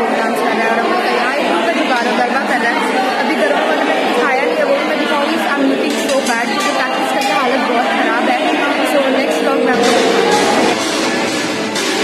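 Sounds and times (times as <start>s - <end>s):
hubbub of overlapping voices: 0.0s - 12.0s.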